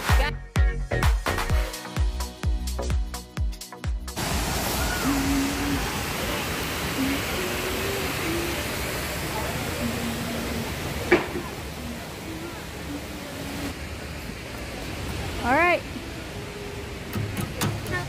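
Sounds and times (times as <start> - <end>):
waterfall and rapids rushing: 4.1 - 18.0
faint voices: 4.8 - 17.2.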